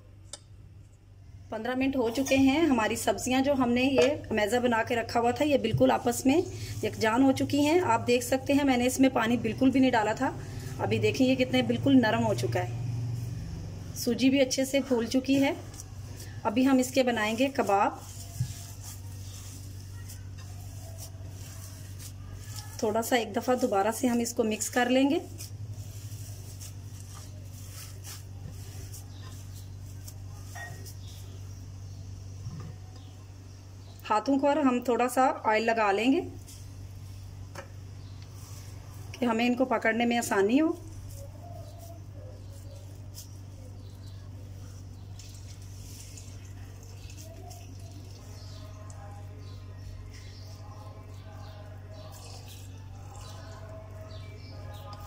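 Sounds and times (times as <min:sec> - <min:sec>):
steady low hum: 0:00.0 - 0:55.0
hands squishing food mash: 0:15.3 - 0:24.4, 0:40.8 - 0:55.0.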